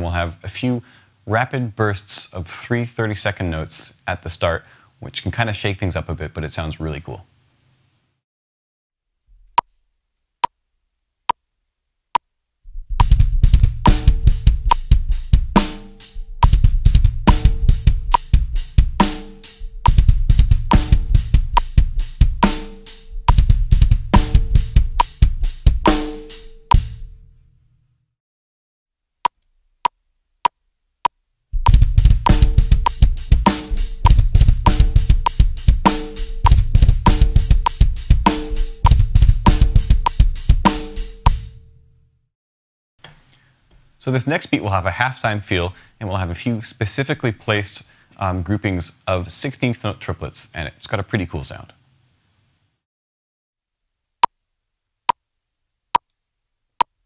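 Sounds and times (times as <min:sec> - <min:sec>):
drum kit playing: 0:12.7 - 0:27.3, 0:31.6 - 0:41.8.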